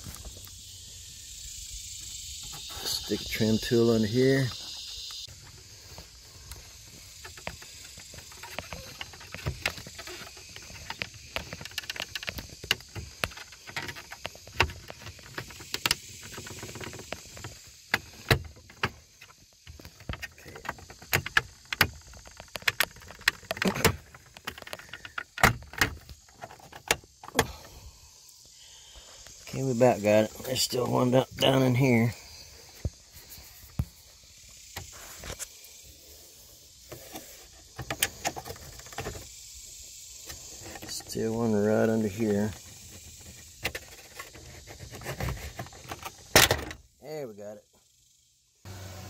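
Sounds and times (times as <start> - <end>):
plastic trim clicks and creaks: 19.7 - 27.5.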